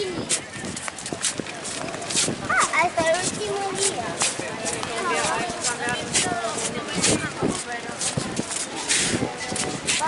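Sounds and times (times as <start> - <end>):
footsteps on stone paving: 0.0 - 10.0
indistinct chatter: 0.0 - 10.0.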